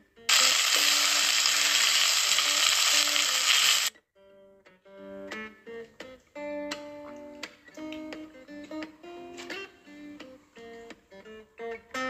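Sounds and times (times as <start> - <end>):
noodles sizzling in a pot: 0.3 - 3.9.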